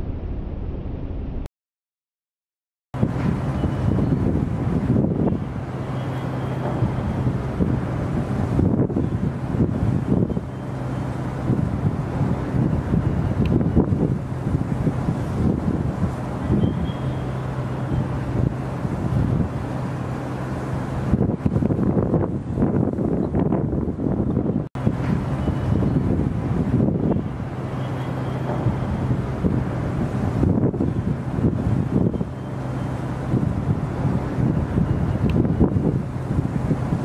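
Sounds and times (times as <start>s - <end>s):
wind buffeting microphone: 3.0s - 37.0s.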